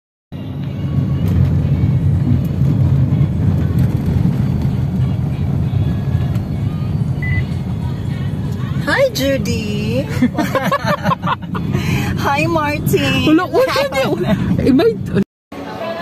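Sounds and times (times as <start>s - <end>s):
car cabin road and engine rumble: 0.4s - 15.2s.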